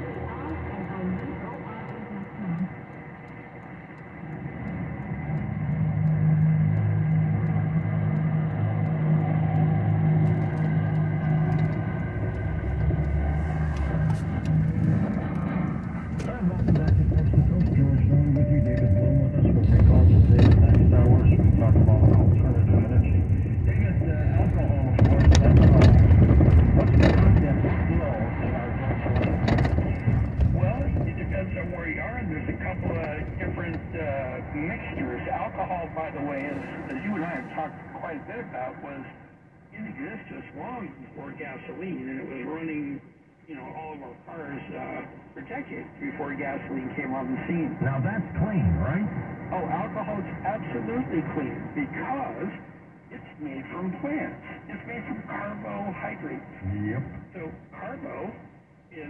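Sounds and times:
faint car radio voice: 0.0 - 3.6, 8.4 - 39.2, 39.8 - 59.0
car engine and road noise: 0.0 - 37.8.

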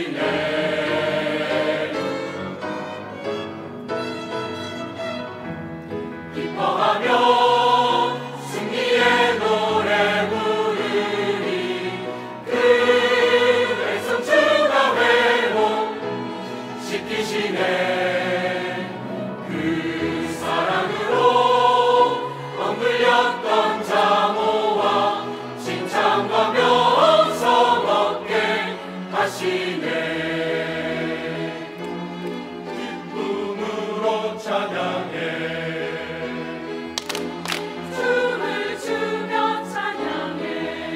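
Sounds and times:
mixed choir singing a hymn: 0.0 - 2.6, 6.3 - 40.9.

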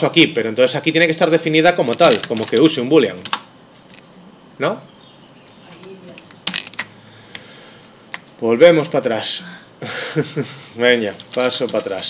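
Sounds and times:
keyboard key clicks: 2.1 - 3.5.

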